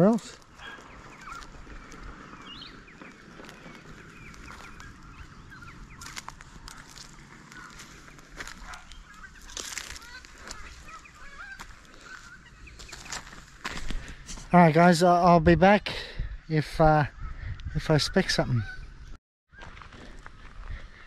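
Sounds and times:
footsteps on gravel: 0:00.0 - 0:14.6, 0:19.5 - 0:21.0
birds chirping and calling: 0:00.0 - 0:19.8.

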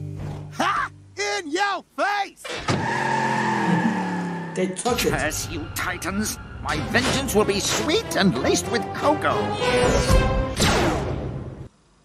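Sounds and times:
cartoon voice: 0:00.6 - 0:02.4
tyres screeching: 0:02.4 - 0:08.2
cartoon van engine speeding away: 0:02.8 - 0:04.6.

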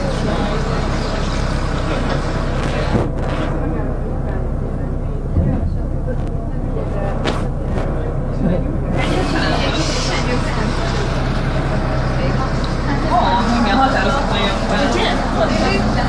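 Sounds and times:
bus engine running: 0:00.0 - 0:16.0.

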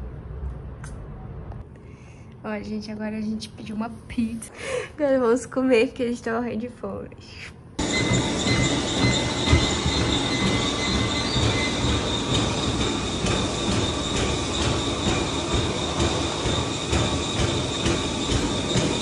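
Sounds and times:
treadmill motor whine: 0:07.8 - 0:19.0
footfalls on treadmill belt: 0:08.0 - 0:19.0.

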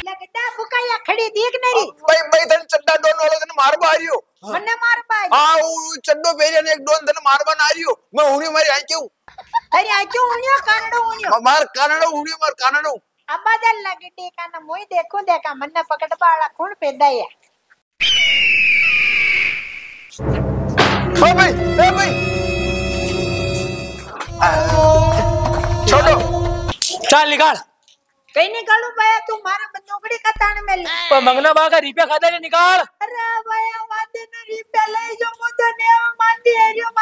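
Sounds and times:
high whistle-like tone: 0:18.0 - 0:20.2
background music: 0:20.2 - 0:26.8.

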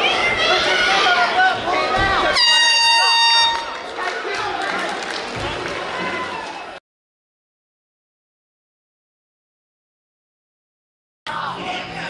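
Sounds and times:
loud steady horn: 0:02.3 - 0:03.9.

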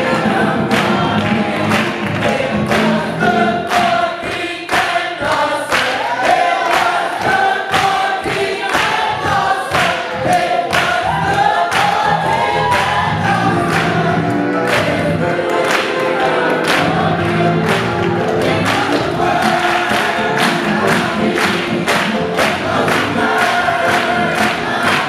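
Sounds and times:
gospel choir singing: 0:00.0 - 0:25.0
hand-clapping on the beat: 0:00.0 - 0:25.0.

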